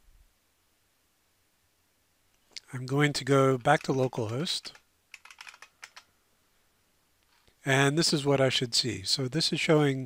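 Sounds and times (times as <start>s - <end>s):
faint keyboard typing: 3.6s - 6.1s.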